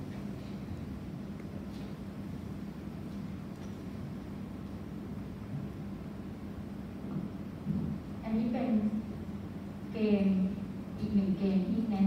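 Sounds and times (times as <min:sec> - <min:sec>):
faint hum: 0:00.0 - 0:12.0
low room rumble: 0:00.0 - 0:12.0.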